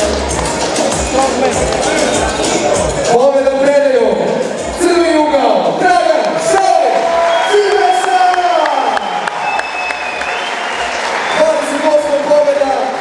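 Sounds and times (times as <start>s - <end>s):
crowd applauding: 0.0s - 3.0s, 6.1s - 13.0s.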